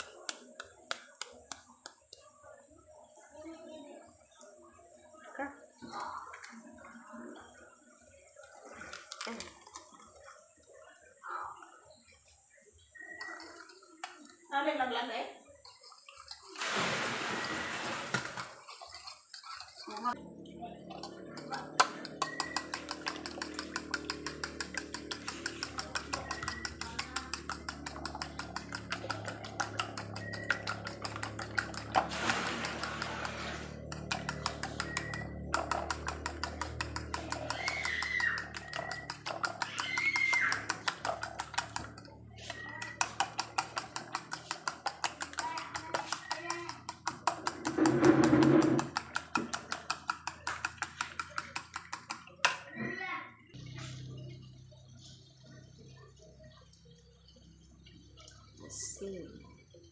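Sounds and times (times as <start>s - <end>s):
fork beating eggs in bowl: 0.0s - 2.3s, 8.3s - 10.3s, 13.0s - 14.4s, 15.4s - 16.6s, 17.4s - 20.2s, 20.9s - 52.7s.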